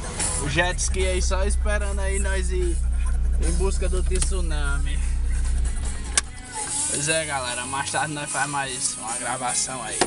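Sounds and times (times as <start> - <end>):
car engine idling: 0.0 - 8.3.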